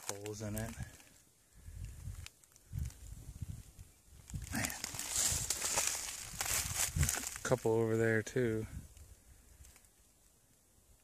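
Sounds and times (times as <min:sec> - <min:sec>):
footsteps in dry leaves: 0:04.3 - 0:07.7.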